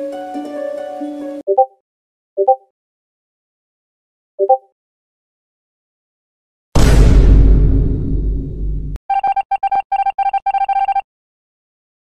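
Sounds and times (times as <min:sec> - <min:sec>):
deep bass sound effect: 0:06.8 - 0:09.0.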